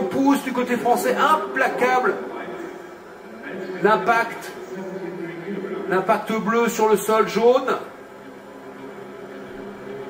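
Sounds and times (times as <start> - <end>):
arena background noise with low hum: 0.0 - 10.0.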